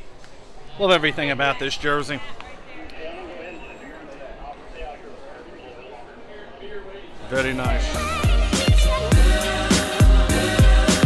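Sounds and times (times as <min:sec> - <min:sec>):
background chatter: 0:00.0 - 0:10.7
man's voice: 0:03.1 - 0:11.0.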